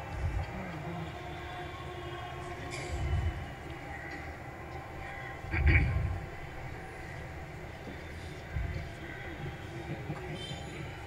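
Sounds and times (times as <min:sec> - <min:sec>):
faint steady tones: 0:00.0 - 0:11.0.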